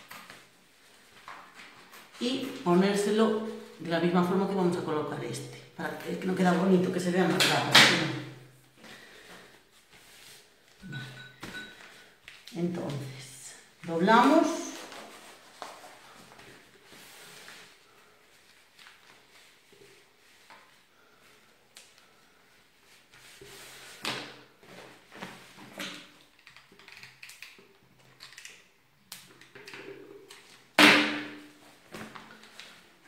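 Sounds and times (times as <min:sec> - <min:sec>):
fabric rustling: 0:08.6 - 0:13.1, 0:14.1 - 0:21.5, 0:22.2 - 0:25.7, 0:31.5 - 0:33.0.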